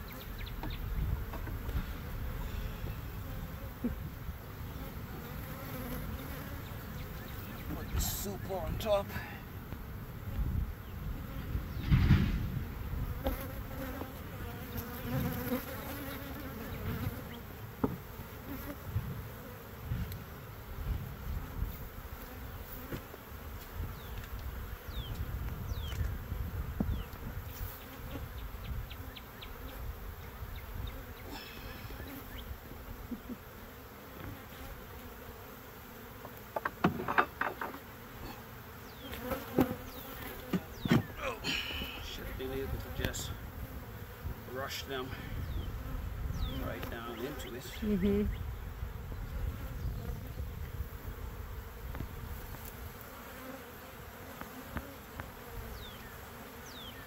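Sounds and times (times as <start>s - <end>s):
honeybees buzzing: 0.0s - 57.0s
wooden knocks of hive frames: 0.6s - 1.8s, 17.8s - 18.2s, 36.2s - 37.9s, 39.1s - 41.2s.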